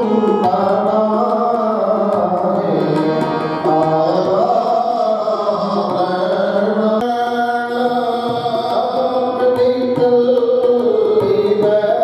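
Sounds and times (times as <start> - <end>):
steady held tones: 0.0 - 6.0.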